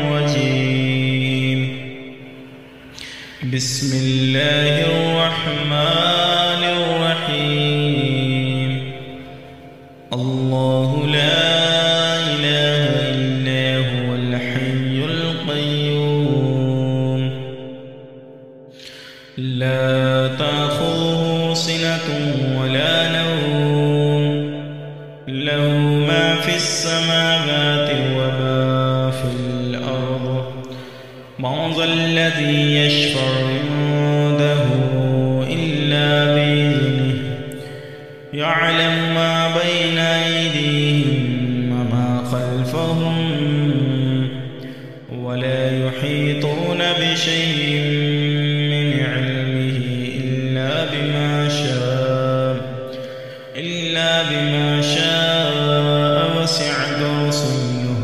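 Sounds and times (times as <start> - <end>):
man chanting melodically: 0.0 - 58.0.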